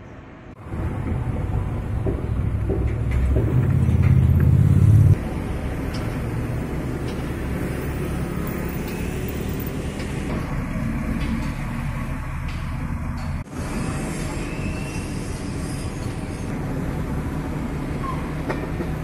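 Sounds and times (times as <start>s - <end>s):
construction machinery rumbling: 0.6s - 19.0s.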